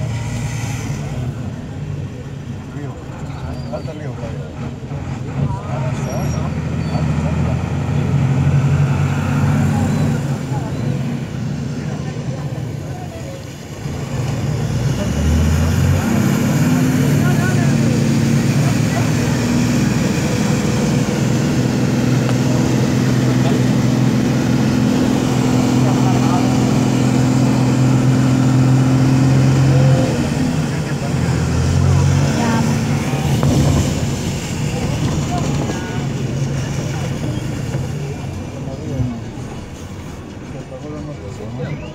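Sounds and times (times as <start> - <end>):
vehicle engine running under load: 0.0 - 41.9.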